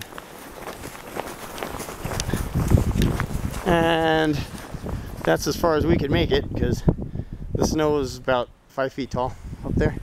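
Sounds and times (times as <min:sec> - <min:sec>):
footsteps in deep snow: 0:00.0 - 0:06.4.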